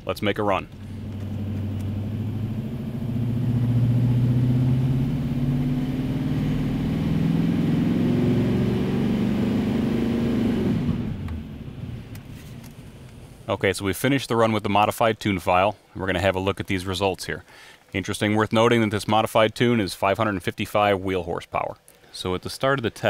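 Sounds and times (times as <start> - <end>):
diesel engine at full throttle: 0.7 - 13.5.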